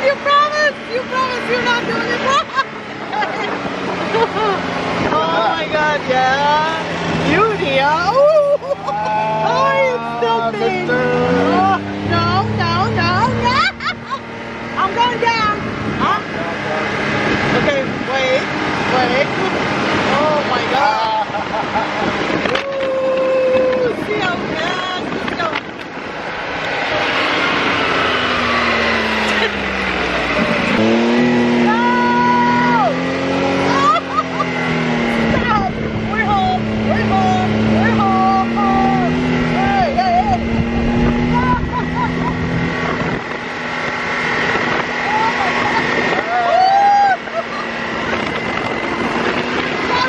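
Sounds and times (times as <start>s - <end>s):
dune buggy engine running: 0.0s - 50.0s.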